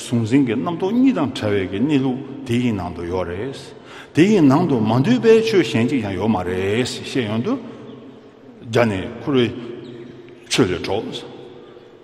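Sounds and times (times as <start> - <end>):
man speaking: 0.0 - 7.7, 8.6 - 9.8, 10.4 - 11.6.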